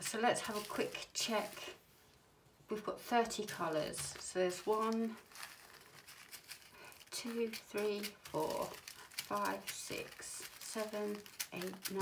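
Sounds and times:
plastic bags crinkling: 0:00.0 - 0:01.8, 0:03.3 - 0:12.0.

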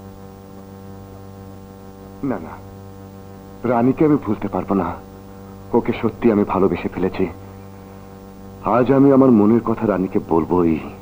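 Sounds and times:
man's voice: 0:03.6 - 0:05.0, 0:05.7 - 0:07.4, 0:08.6 - 0:11.0.

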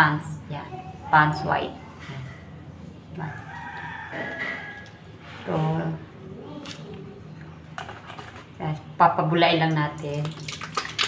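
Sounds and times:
rooster crowing: 0:03.2 - 0:05.1.

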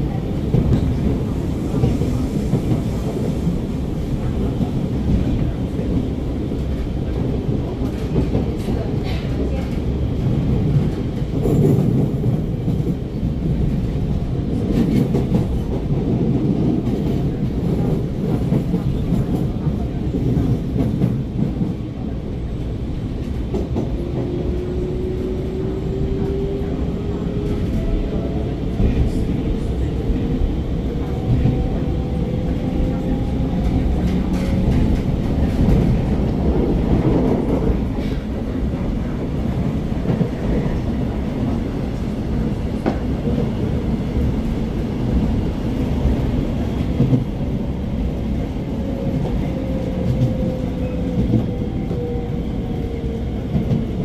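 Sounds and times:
train wheels running on rails: 0:00.0 - 0:54.0.

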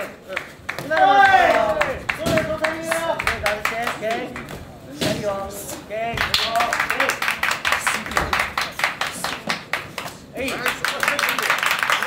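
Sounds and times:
hand clapping: 0:00.0 - 0:04.6, 0:06.1 - 0:12.0.

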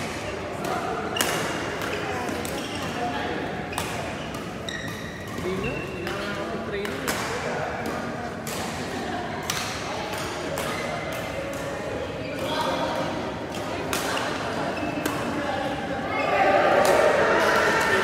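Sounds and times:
racket hitting shuttlecock: 0:00.0 - 0:02.7, 0:03.6 - 0:05.4, 0:06.8 - 0:11.8, 0:13.0 - 0:14.2, 0:14.9 - 0:15.4
shoes squeaking on floor: 0:02.5 - 0:03.1, 0:03.7 - 0:06.0.

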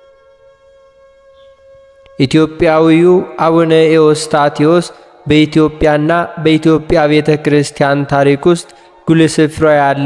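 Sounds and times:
man chanting: 0:02.2 - 0:10.0.

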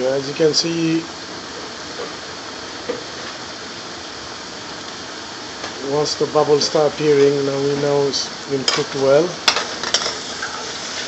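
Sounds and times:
sauce bubbling in a pan: 0:00.2 - 0:07.6, 0:08.3 - 0:11.0.

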